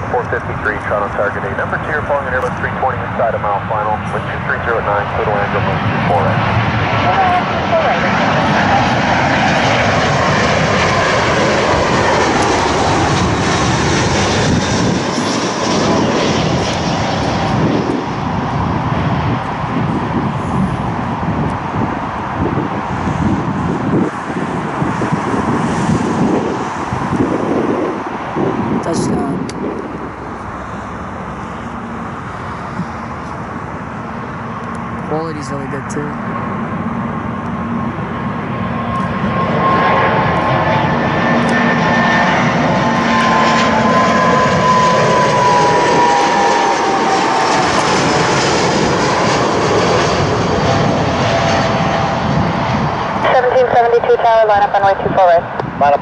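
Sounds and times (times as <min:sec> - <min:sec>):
jet engines passing overhead: 0:00.0 - 0:56.0.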